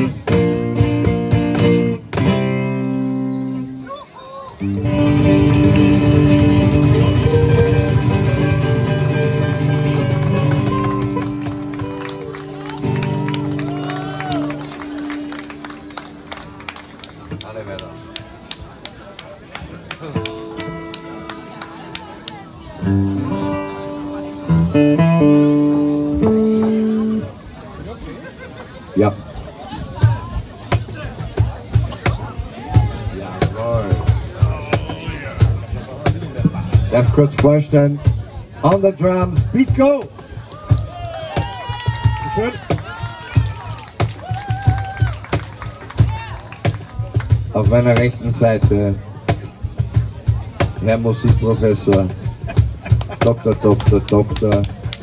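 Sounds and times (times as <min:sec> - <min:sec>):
cajon beat: 0:00.0 - 0:03.6, 0:04.6 - 0:27.3, 0:29.8 - 0:55.0
acoustic guitar: 0:00.0 - 0:03.9, 0:04.6 - 0:18.8, 0:20.0 - 0:27.7, 0:29.0 - 0:55.0.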